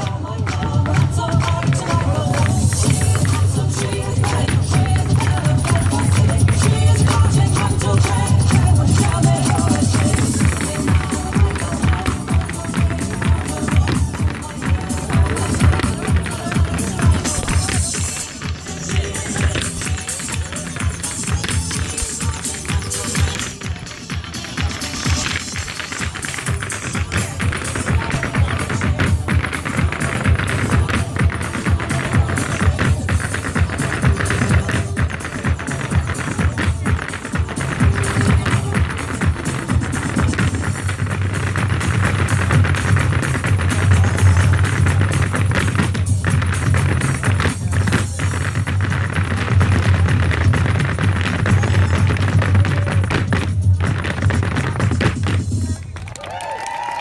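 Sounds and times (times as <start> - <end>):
hard shoes tapping on wooden stage: 0.0 - 57.0
live dance music with bass beat: 0.0 - 57.0.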